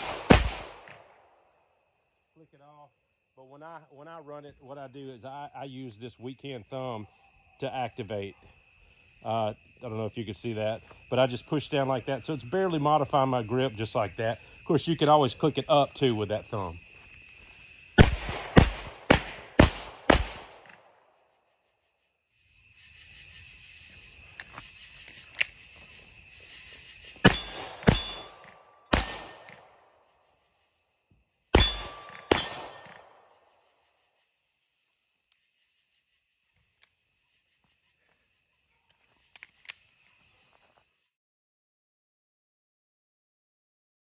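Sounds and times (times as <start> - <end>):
pistol shots with echo: 0.0 - 1.3, 18.0 - 21.0, 27.2 - 29.9, 31.6 - 33.3
insects chirping: 0.0 - 41.2.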